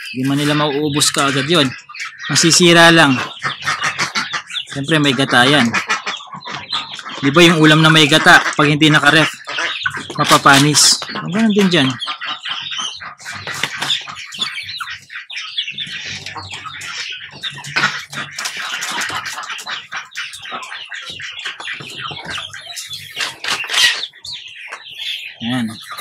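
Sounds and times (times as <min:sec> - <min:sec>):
hens pecking and scratching: 0:00.0 - 0:26.0.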